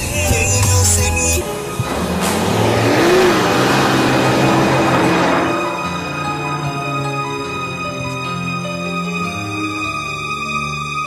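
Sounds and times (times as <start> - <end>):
car engine revving: 0.8 - 9.1
tyre noise on dirt road: 1.7 - 7.6.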